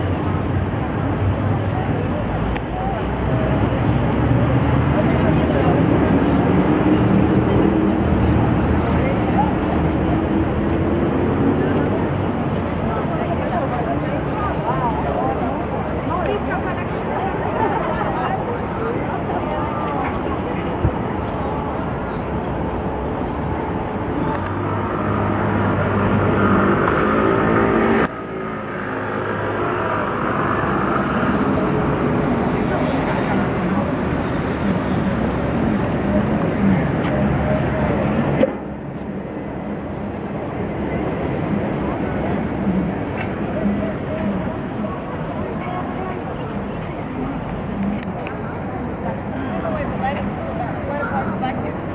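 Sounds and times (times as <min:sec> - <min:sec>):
people chattering: 0:00.0 - 0:51.9
road traffic passing: 0:00.0 - 0:51.9.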